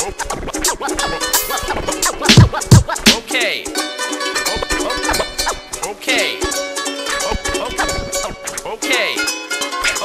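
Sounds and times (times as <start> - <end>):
turntable record scratching: 0.0 - 3.8, 4.4 - 6.6, 7.2 - 9.2
hip hop beat: 0.0 - 10.0.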